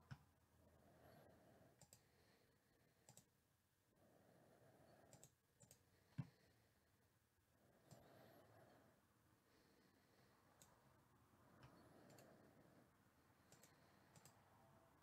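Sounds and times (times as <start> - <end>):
faint sharp clicks: 1.8 - 2.0, 3.0 - 3.3, 5.1 - 6.3, 11.6 - 12.3, 13.4 - 14.4.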